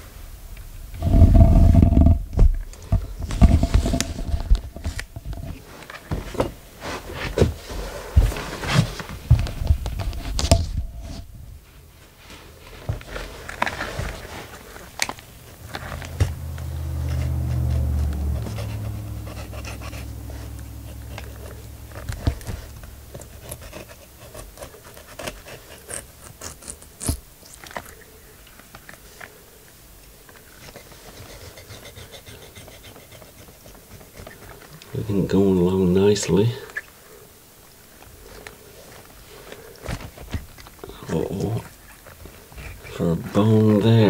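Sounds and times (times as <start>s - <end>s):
low hum: 0.0s - 6.6s, 13.1s - 26.4s
newspaper crinkling: 12.2s - 16.2s
knife cutting and scraping fish: 18.5s - 28.0s.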